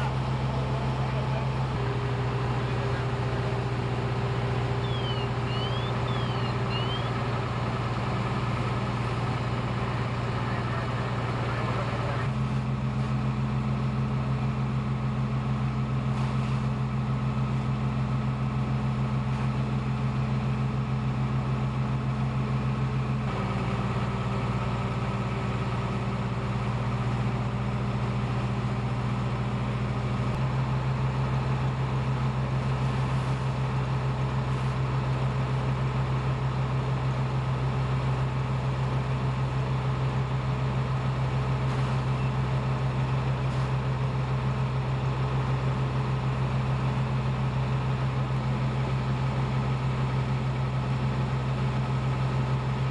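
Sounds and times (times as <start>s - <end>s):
diesel engine droning: 0.0s - 52.9s.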